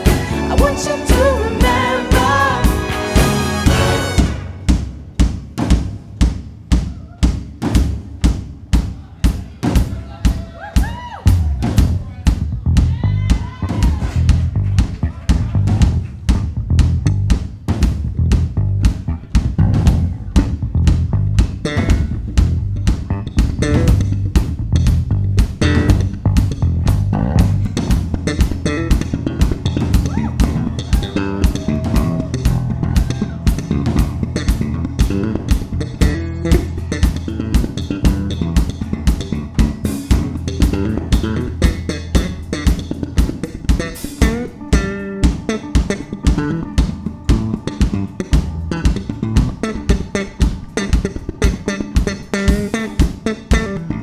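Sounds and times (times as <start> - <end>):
funk electric bass guitars: 0.0 - 4.6, 9.8 - 54.0
drum kit groove: 0.0 - 54.0.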